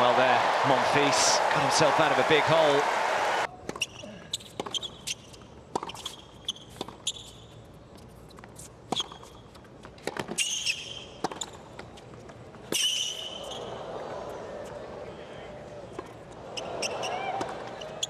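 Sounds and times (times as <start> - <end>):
crowd noise: 0.0 - 3.7, 13.4 - 18.0
shoes squeaking on court: 3.6 - 13.8, 16.0 - 18.0
tennis ball bouncing: 5.7 - 7.0.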